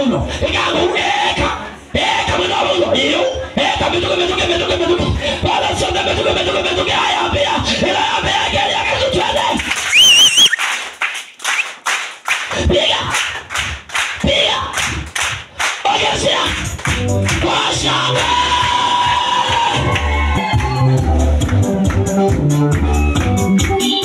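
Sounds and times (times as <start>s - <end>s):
congregation clapping in rhythm: 9.2s - 20.7s, 21.3s - 24.0s
high wavering cry: 9.9s - 10.6s
gospel music: 15.6s - 24.0s
music with heavy bass beat: 16.4s - 19.0s, 19.7s - 24.0s.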